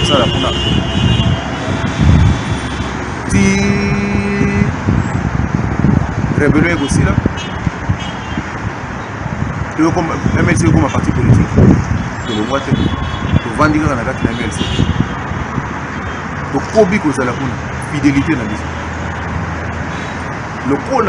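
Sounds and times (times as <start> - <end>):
man speaking: 0.0 - 0.7, 3.2 - 4.8, 6.4 - 7.2, 12.2 - 14.7, 16.5 - 18.7, 20.6 - 21.0
car horns: 0.0 - 5.2, 6.7 - 8.6, 12.2 - 16.4
street traffic noise: 0.0 - 21.0.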